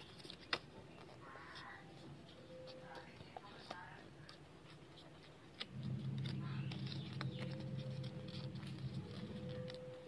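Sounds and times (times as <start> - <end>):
low steady hum: 0.0 - 10.0
paper being creased and folded: 0.0 - 10.0.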